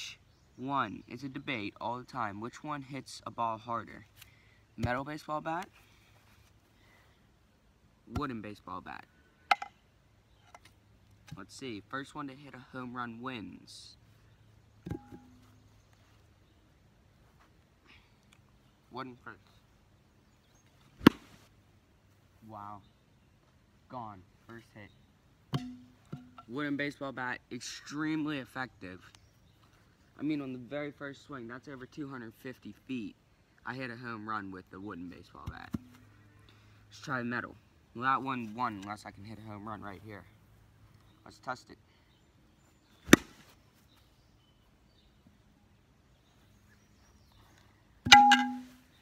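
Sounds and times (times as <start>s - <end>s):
wooden bat cracking a ball: 9.5s - 9.8s, 14.8s - 15.4s, 21.0s - 21.4s, 25.5s - 26.4s, 43.1s - 43.5s, 48.0s - 48.8s.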